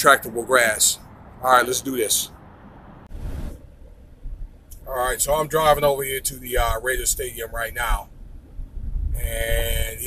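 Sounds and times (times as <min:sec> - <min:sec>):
car interior rumble: 0:00.0 - 0:10.0
rush of noise: 0:00.9 - 0:10.0.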